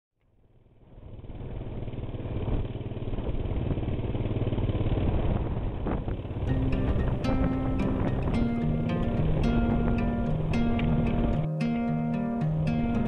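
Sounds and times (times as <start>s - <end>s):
engine rumble: 0.6s - 11.5s.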